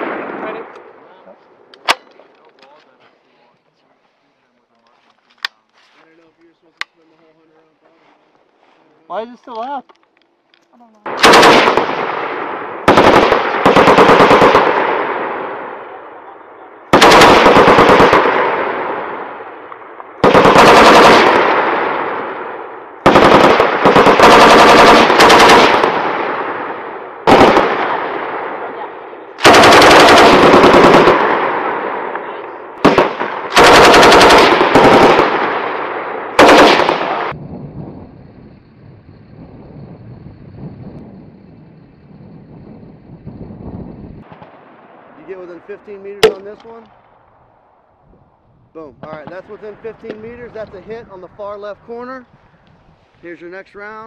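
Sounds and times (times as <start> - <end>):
machine gun firing bursts: 11.1 - 15.5, 16.9 - 19.2, 20.2 - 28.6, 29.4 - 32.2, 32.8 - 37.4.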